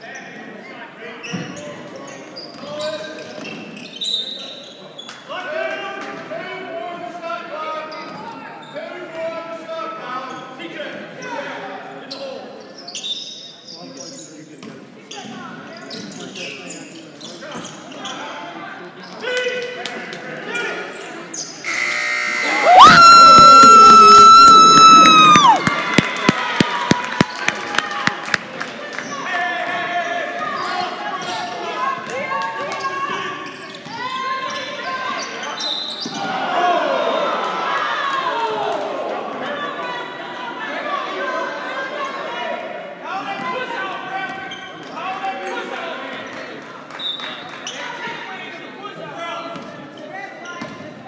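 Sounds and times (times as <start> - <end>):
players and fans voices: 13.8 - 51.0
loud horn tone: 21.7 - 23.0.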